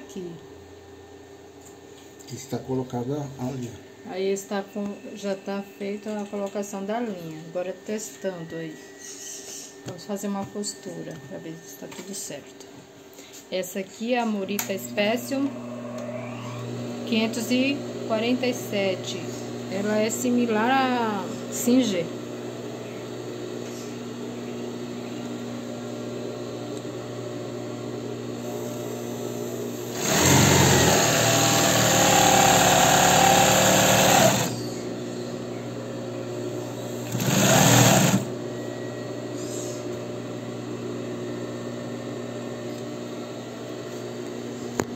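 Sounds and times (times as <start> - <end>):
steady machine hum: 0.0 - 44.9
sewing machine stitching: 29.9 - 34.6, 37.0 - 38.3.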